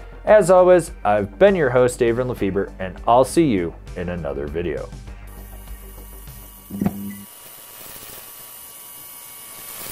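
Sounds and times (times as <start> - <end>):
neon sign electrical hum: 5.2 - 9.9.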